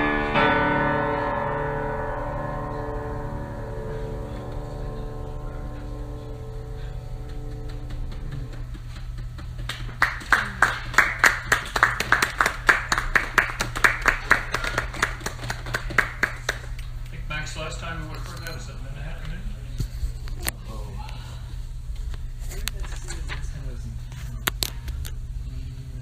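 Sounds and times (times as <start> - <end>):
piano chord ringing: 0.0 - 8.6
audience clapping: 7.2 - 17.1.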